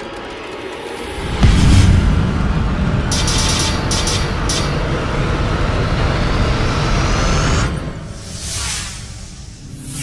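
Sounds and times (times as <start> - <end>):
loud low rumble: 1.1 - 8.0.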